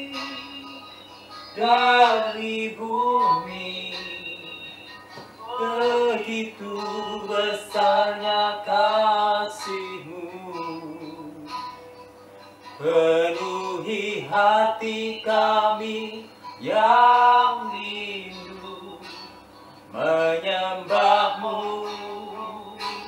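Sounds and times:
man singing slow melody: 0.0 - 11.7, 12.8 - 23.0.

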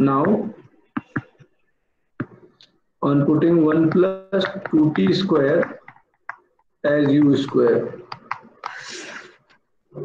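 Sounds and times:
person breathing in quickly: 8.6 - 9.5.

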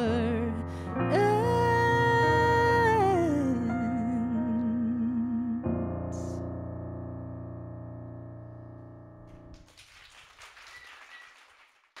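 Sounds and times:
small audience clapping: 9.3 - 12.0.

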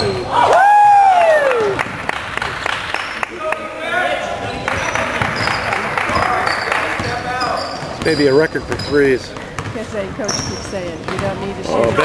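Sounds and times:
basketball dribbling on hardwood: 7.8 - 11.4.

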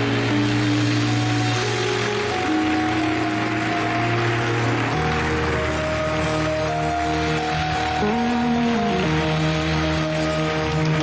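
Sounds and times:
congregation clapping and shouting: 0.0 - 11.0
held keyboard chords: 0.0 - 11.0
sustained bass: 0.0 - 11.0.

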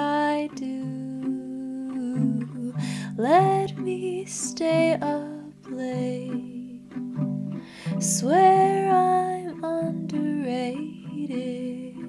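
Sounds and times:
plucked acoustic guitar: 0.0 - 12.0.

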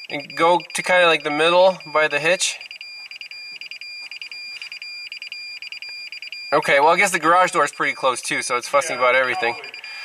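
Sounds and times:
rapid high beeps: 0.0 - 10.0
steady high tone: 6.5 - 10.0.

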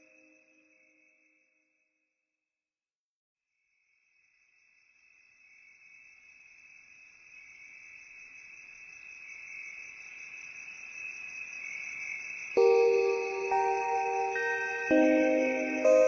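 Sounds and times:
soft music with mallet notes: 12.6 - 16.0.

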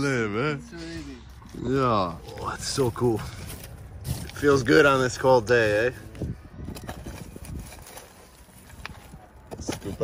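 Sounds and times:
charcoal crunching and clinking: 6.7 - 10.0.

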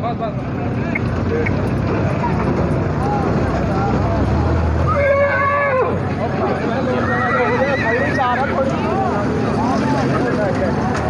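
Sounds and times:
chatter of voices: 0.0 - 11.0
horse whinnying: 4.9 - 6.0, 6.9 - 8.5.

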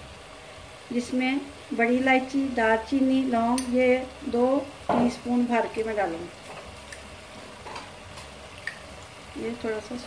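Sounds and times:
food sizzling in a pot: 0.0 - 10.0.

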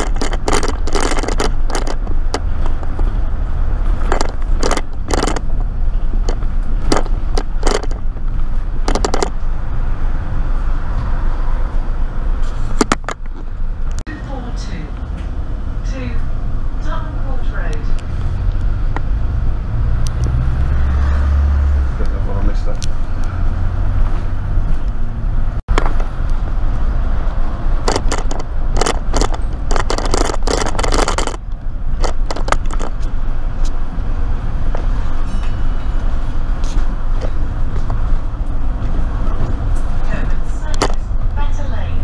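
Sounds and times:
body rattles: 0.0 - 3.2, 3.8 - 9.5, 27.8 - 33.6
sharp clicking and rattling: 0.0 - 9.6, 12.7 - 14.0, 25.7 - 26.8, 27.7 - 33.8
bus engine rumble: 0.0 - 42.0
road noise: 0.0 - 42.0.

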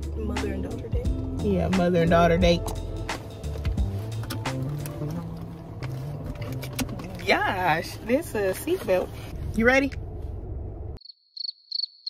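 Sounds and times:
low car cabin rumble: 0.0 - 11.0
cricket chirping sound effect: 11.0 - 12.0.

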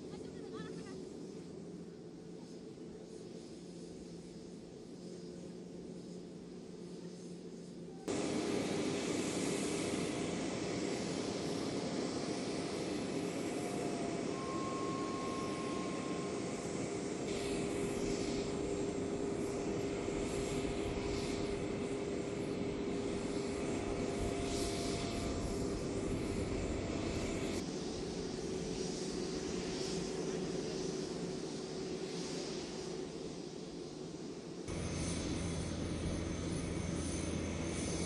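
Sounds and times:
jet aircraft engine rumble: 0.0 - 38.0.

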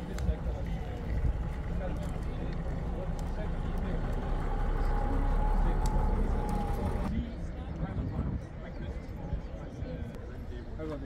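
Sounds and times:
vehicle engine rumbling: 0.0 - 8.6
people talking: 0.0 - 11.0.

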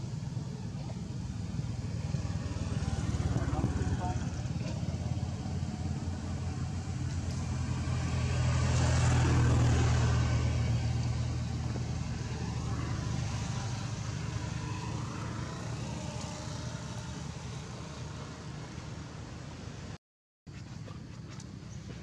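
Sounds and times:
vehicle engine passing: 0.0 - 19.8.

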